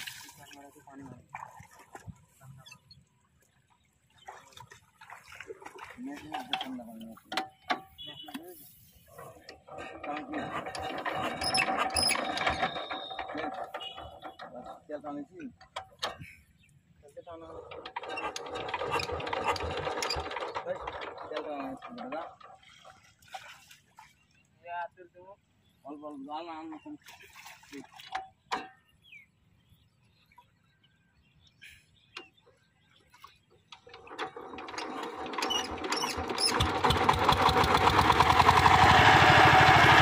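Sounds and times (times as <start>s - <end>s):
water sloshing from wading: 0.0s - 24.6s, 26.1s - 29.1s, 29.7s - 40.0s
men talking: 0.3s - 1.3s, 5.9s - 7.3s, 8.0s - 11.5s, 12.3s - 15.6s, 17.0s - 17.7s, 20.6s - 22.3s, 24.6s - 27.1s
diesel engine being hand-cranked: 8.9s - 16.5s, 17.3s - 22.8s, 33.7s - 40.0s.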